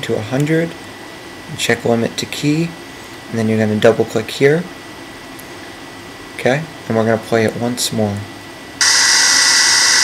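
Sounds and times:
loud steady hiss: 0:08.8 - 0:10.0.

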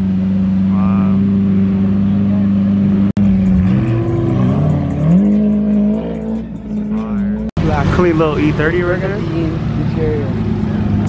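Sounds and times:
car engine idling: 0:00.0 - 0:11.0
voices: 0:03.9 - 0:11.0.

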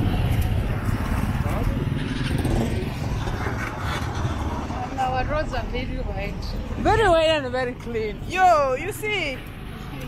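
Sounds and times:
motorcycles and cars passing: 0:00.0 - 0:10.0.

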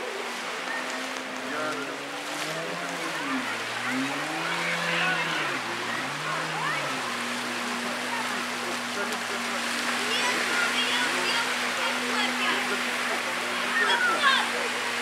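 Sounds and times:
jet ski engine revving: 0:00.0 - 0:15.0
water wash: 0:00.0 - 0:15.0.

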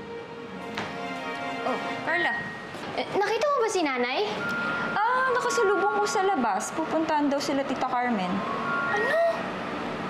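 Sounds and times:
steady high tones: 0:04.2 - 0:10.0.

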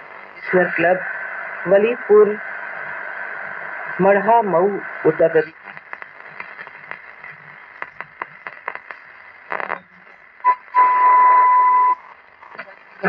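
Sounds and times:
radio static hiss and crackle: 0:00.0 - 0:13.0
radio dial clicks: 0:05.6 - 0:09.9.

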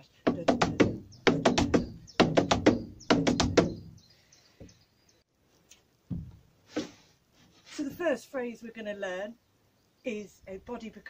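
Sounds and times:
boots stepping on wooden board: 0:00.3 - 0:04.0, 0:06.1 - 0:07.0.

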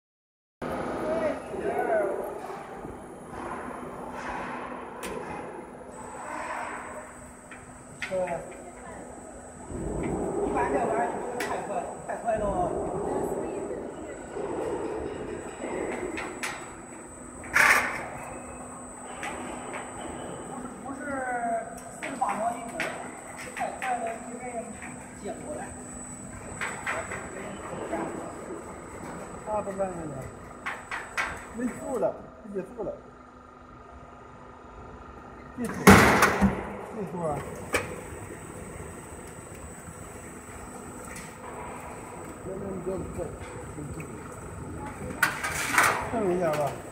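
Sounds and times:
machine humming: 0:00.6 - 0:46.9.

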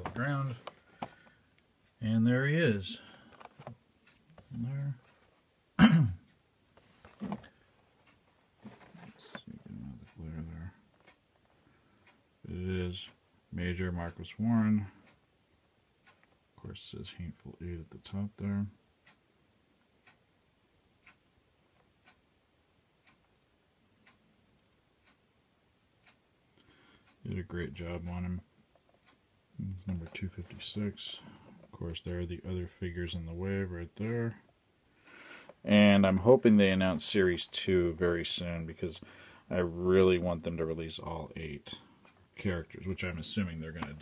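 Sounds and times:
clock ticking: 0:00.0 - 0:44.0
man clearing his throat: 0:05.8 - 0:06.3.

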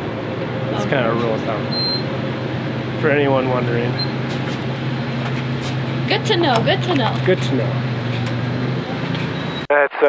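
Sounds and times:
fuel pump humming: 0:00.0 - 0:09.7.

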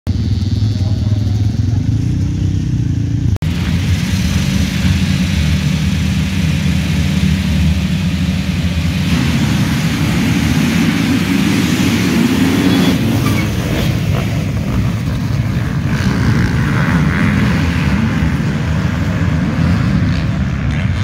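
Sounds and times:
dirt bike engine revving: 0:00.1 - 0:21.0
many dirt bikes revving together: 0:00.1 - 0:21.0.

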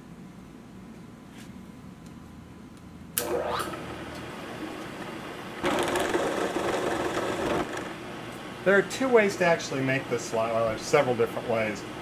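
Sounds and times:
milling machine spindle running: 0:05.6 - 0:08.0.

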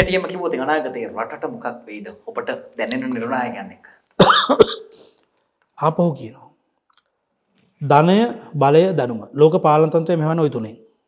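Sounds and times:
man coughing sharply: 0:04.2 - 0:05.0.

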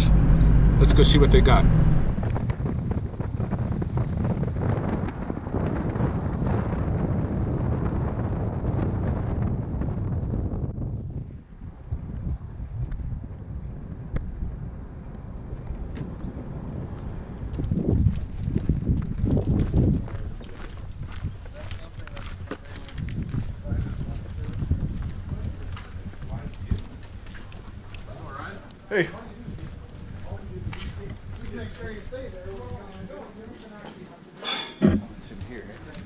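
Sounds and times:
low thumps and gusts: 0:00.0 - 0:33.1, 0:34.8 - 0:36.0
wind and road noise: 0:00.0 - 0:33.9, 0:34.7 - 0:36.0.

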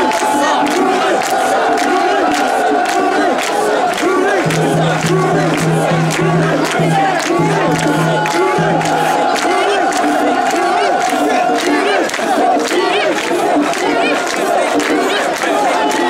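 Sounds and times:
crowd chanting in rhythm: 0:00.0 - 0:16.0.

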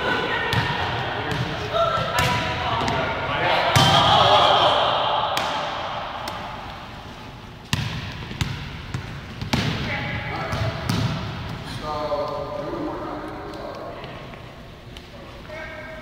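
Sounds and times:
volleyballs smacking on gym floor: 0:00.4 - 0:03.1, 0:05.3 - 0:06.9, 0:07.6 - 0:14.2.

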